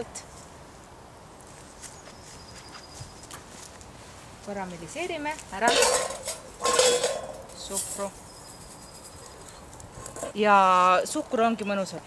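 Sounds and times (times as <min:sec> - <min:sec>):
footsteps on dry grass: 0:01.4 - 0:05.7.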